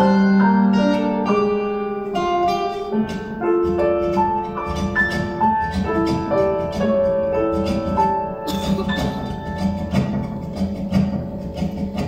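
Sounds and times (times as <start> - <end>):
plucked acoustic guitar: 0.0 - 12.0
sustained piano chords: 0.0 - 12.0.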